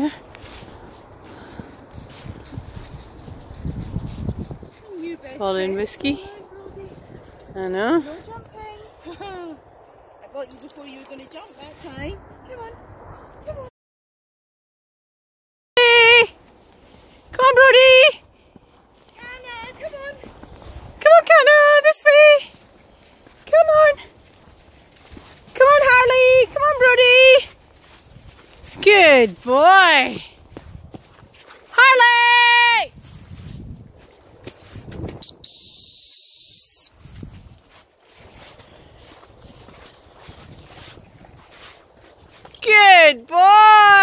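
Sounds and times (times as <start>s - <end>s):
footsteps in snow: 0.0s - 13.7s, 16.4s - 31.8s, 32.4s - 35.2s, 36.9s - 42.9s
dog whistle blasts: 35.2s - 37.0s
high-pitched calls: 35.2s - 37.0s.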